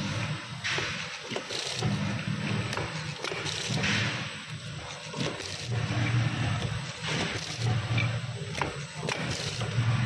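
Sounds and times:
packing machine humming: 0.0 - 10.0
steady mechanical noise: 0.0 - 10.0.

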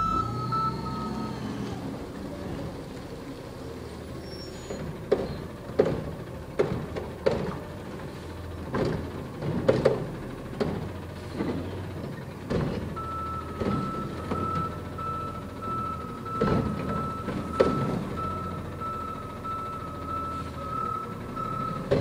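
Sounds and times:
reversing alarm beeping: 0.0 - 1.8, 13.0 - 22.0
truck engine running: 0.0 - 22.0
clanks and thuds: 4.7 - 7.8, 8.6 - 14.7, 16.3 - 18.2, 21.8 - 22.0.

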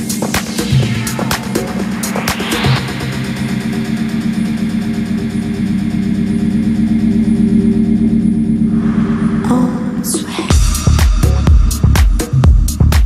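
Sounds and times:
rising noise swell: 0.0 - 11.0
sustained low synth chord: 0.7 - 11.0.

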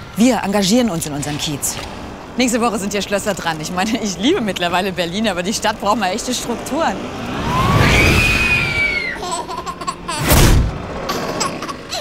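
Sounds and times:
young child squealing: 7.4 - 9.2
child giggling: 9.0 - 10.4, 11.1 - 12.0.

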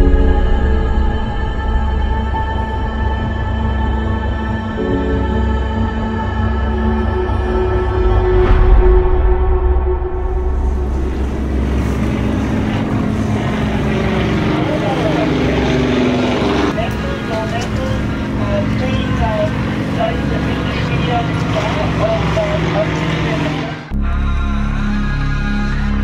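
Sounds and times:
indistinct voices: 9.5 - 26.0
motorboat engine running: 10.6 - 24.0.

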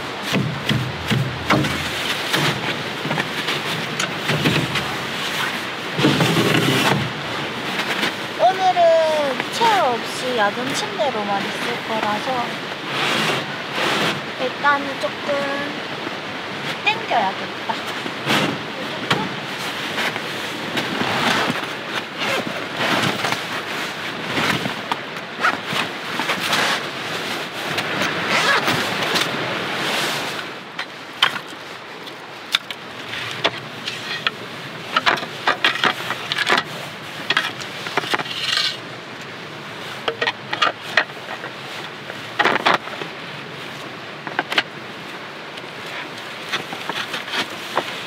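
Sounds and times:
fabric cot rustling and scraping: 0.0 - 7.0, 12.3 - 14.3, 17.8 - 18.6, 19.5 - 24.8, 25.4 - 30.4
wooden clacks and knocks: 0.2 - 4.9, 35.0 - 36.7, 40.0 - 41.5.

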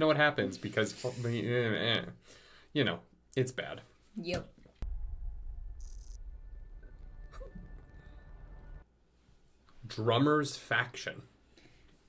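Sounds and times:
low drone with held tones: 4.9 - 8.8.

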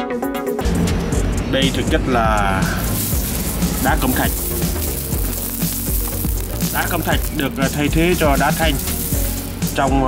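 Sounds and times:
stone chips clinking when stirred: 2.8 - 9.9.

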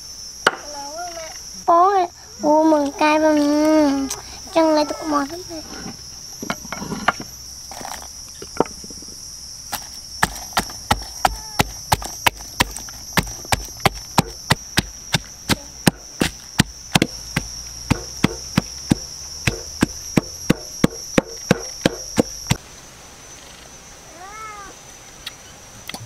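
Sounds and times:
high-pitched whine: 0.0 - 26.0
pestle pounding in wooden mortar: 9.8 - 22.6.

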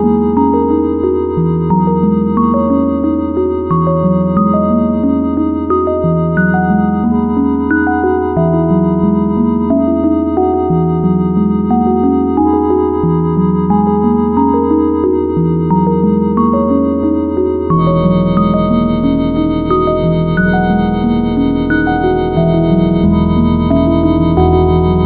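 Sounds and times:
low synthesizer drone: 0.0 - 25.0
synthesizer bass line: 0.0 - 25.0.

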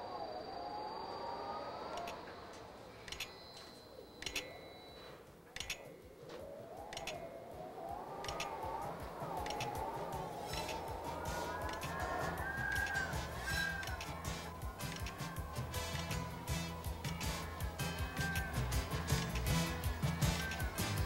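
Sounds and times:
wind howling: 0.0 - 21.0
wind-speed recorder clicks: 1.9 - 3.5, 4.1 - 16.2.

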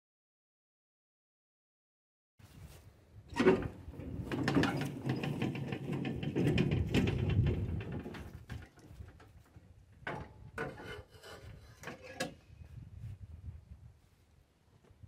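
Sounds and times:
cart rattling over rough ground: 3.3 - 12.4.

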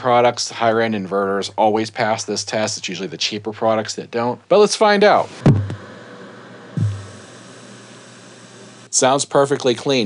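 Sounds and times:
amplifier hiss: 0.6 - 10.0
low thump: 5.4 - 5.8, 6.8 - 7.2.

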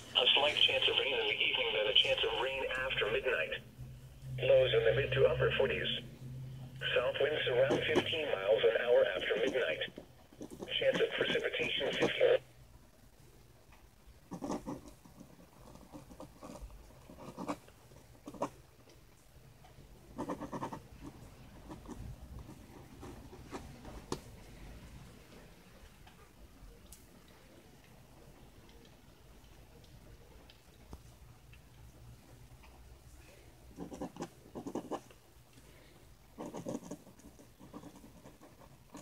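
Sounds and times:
pen scratching on paper: 7.5 - 8.2, 9.4 - 12.1, 14.3 - 18.6, 20.1 - 24.2, 33.8 - 35.1, 36.3 - 39.0.

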